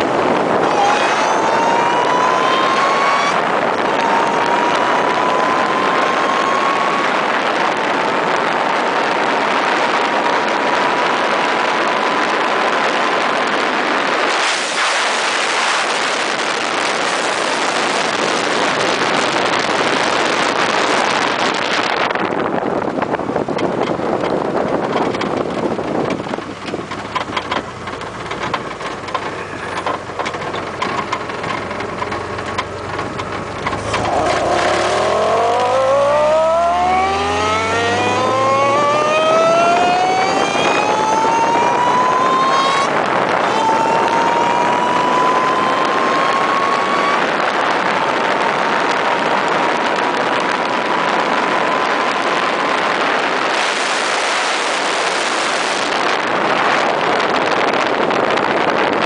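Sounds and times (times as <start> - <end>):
wind rushing: 0.0 - 26.6, 33.6 - 59.0
car engine accelerating hard: 0.0 - 59.0.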